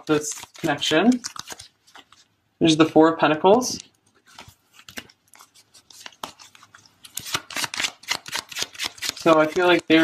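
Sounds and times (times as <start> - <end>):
cards being shuffled: 0.0 - 2.3, 3.7 - 10.0.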